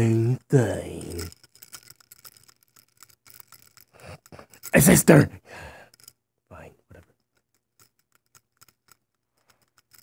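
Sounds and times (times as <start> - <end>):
plastic toy figures clicking: 0.5 - 5.2.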